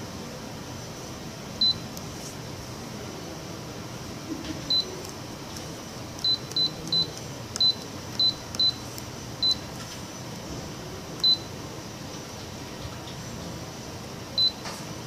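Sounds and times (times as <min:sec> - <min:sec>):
steady low hum: 0:00.0 - 0:15.0
short high key-press beeps: 0:01.6 - 0:02.1, 0:04.7 - 0:05.1, 0:06.2 - 0:09.7, 0:11.2 - 0:11.5, 0:14.4 - 0:14.7.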